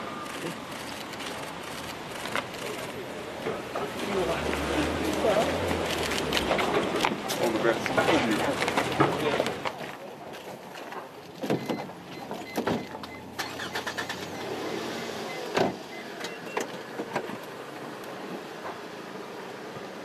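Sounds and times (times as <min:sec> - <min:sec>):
low car and street hum: 0:00.0 - 0:20.0
car beeps: 0:11.5 - 0:16.7
car door shutting: 0:15.1 - 0:17.4.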